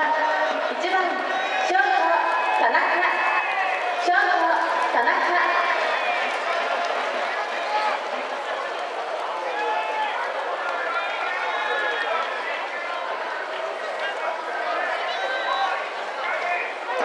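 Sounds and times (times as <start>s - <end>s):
crowd babble: 0.0s - 17.0s.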